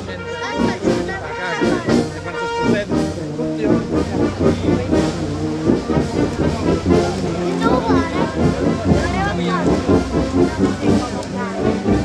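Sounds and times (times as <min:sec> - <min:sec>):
brass band playing held notes: 0:00.0 - 0:12.0
crowd talking: 0:00.0 - 0:12.0.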